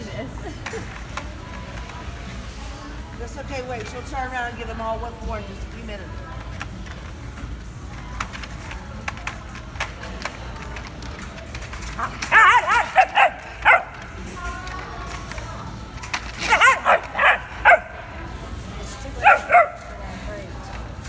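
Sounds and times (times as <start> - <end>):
puppies yipping and barking: 12.0 - 14.2, 16.2 - 18.2.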